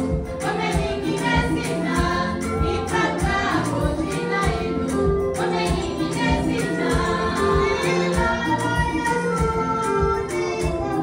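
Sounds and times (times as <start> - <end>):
women's choir singing gospel: 0.0 - 11.0.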